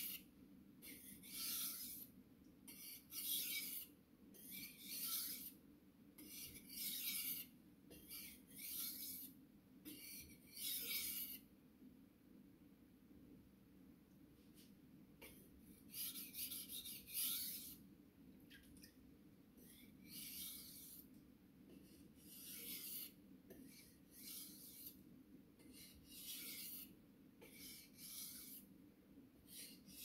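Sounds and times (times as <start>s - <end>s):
knife scraping on whetstone: 0.8s - 2.1s, 2.7s - 5.6s, 6.2s - 9.3s, 9.9s - 11.4s, 15.9s - 17.8s, 19.7s - 21.0s, 21.7s - 25.0s, 25.6s - 28.7s.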